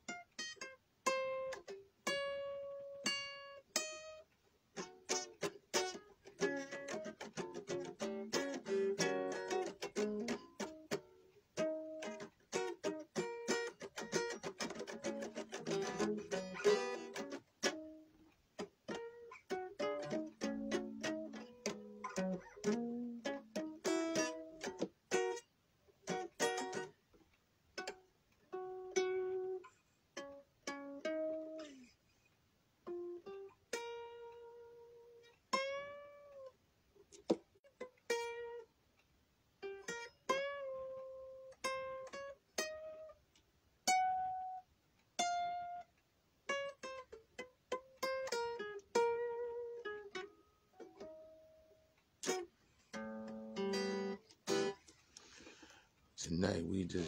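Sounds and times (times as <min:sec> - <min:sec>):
guitar plucked notes: 0:00.0 - 0:27.0, 0:27.8 - 0:31.9, 0:32.8 - 0:36.5, 0:39.6 - 0:43.2, 0:43.8 - 0:44.6, 0:46.5 - 0:55.6.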